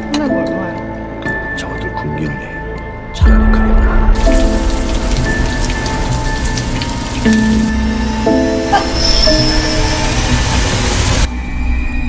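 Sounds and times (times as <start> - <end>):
background music: 0.0 - 12.0
shower spray running: 4.2 - 8.1, 8.7 - 11.3.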